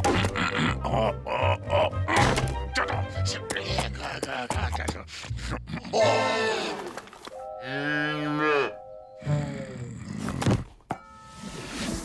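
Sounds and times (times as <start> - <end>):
cartoon moose calling: 7.6 - 8.8.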